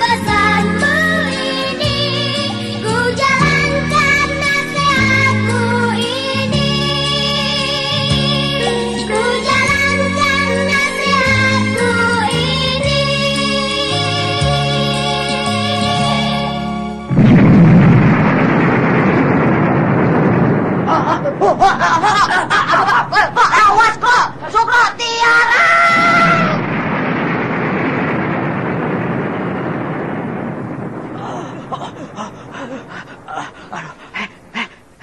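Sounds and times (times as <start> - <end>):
rumbling explosion: 17.1 - 35.0
people shrieking: 20.9 - 26.6
breathy panting: 31.3 - 35.0.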